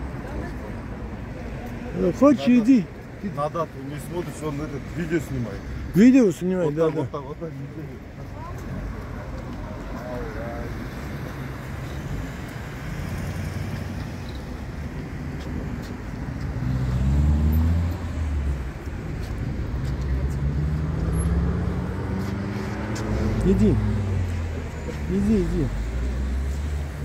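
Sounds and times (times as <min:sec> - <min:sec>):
cars passing: 0:00.0 - 0:27.0
engine speeding up: 0:16.6 - 0:18.6.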